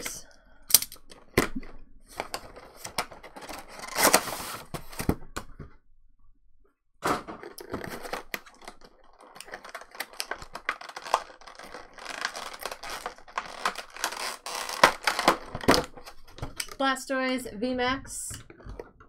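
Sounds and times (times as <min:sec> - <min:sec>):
plastic packaging crackling: 0:07.3 - 0:16.8.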